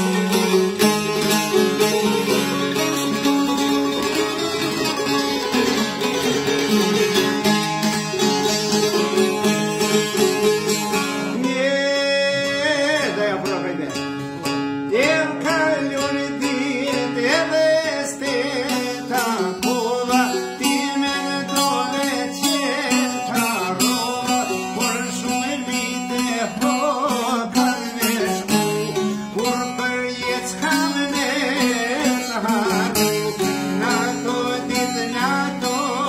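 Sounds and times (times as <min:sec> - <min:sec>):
plucked folk lutes: 0:00.0 - 0:36.0
man singing ornamented line: 0:09.7 - 0:36.0.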